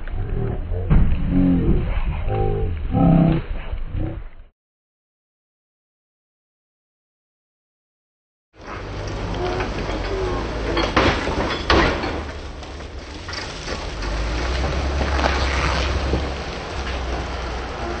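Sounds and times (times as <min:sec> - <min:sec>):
outdoor noise: 0:00.0 - 0:04.5, 0:08.6 - 0:18.0
car engine rumbling: 0:08.6 - 0:18.0
faint voices: 0:08.9 - 0:11.0, 0:17.6 - 0:18.0.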